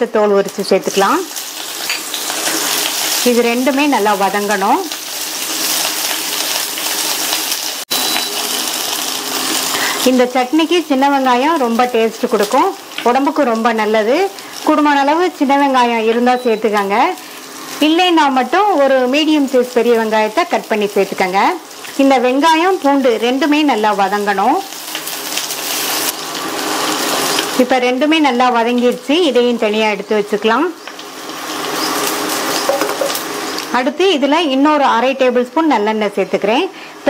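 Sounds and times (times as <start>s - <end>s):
garlic sizzling in hot oil: 0.0s - 37.0s.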